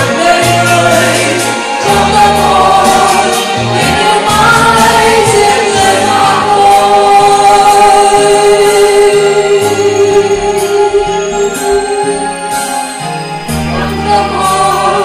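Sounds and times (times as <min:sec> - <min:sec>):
choir singing: 0:00.0 - 0:12.3, 0:13.5 - 0:15.0
instrumental accompaniment: 0:00.0 - 0:15.0.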